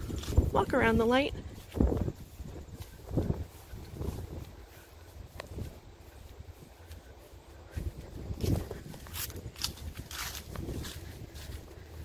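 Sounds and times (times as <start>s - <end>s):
footsteps through grass and leaves: 0.0s - 12.0s
wind rumble on microphone: 0.0s - 12.0s.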